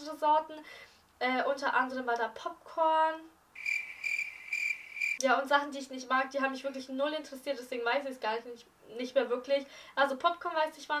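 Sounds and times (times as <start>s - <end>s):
crickets chirping: 3.6s - 5.2s.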